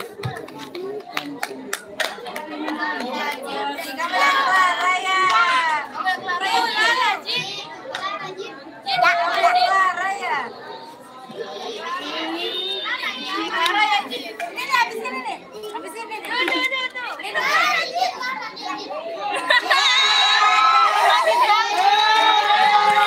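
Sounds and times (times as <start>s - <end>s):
children chattering and calling out: 0.0s - 23.0s.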